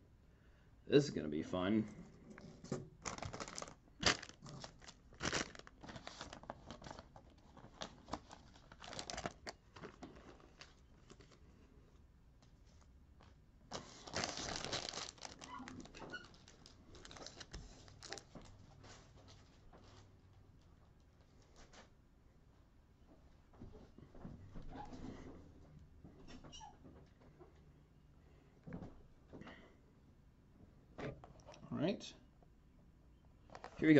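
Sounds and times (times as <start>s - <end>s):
plastic packaging crinkling: 3.0s - 11.4s, 13.2s - 18.8s, 33.5s - 33.9s.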